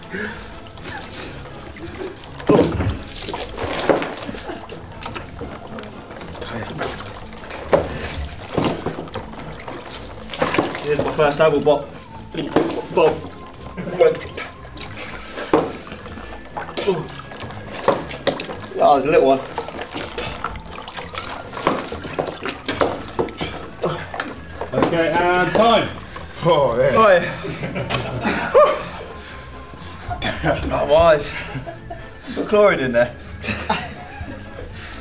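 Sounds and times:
background music: 0.0 - 35.0
water splashing in tubs: 0.0 - 35.0.

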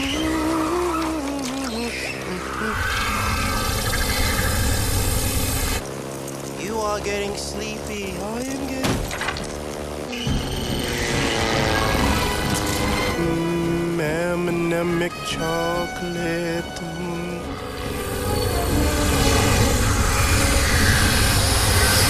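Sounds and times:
short gliding squeals: 0.0 - 5.8, 10.1 - 13.8, 14.5 - 22.0
aircraft engine rush: 2.2 - 22.0
action movie music: 8.8 - 22.0.

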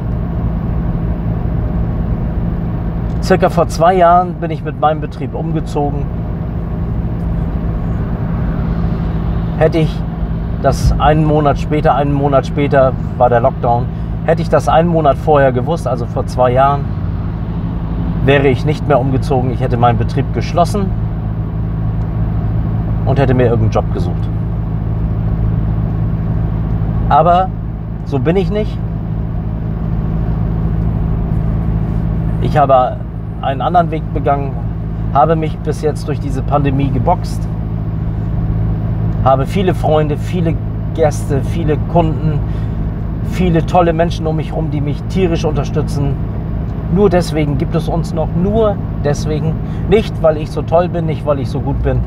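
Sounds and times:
car engine rumble inside cabin: 0.0 - 52.0.

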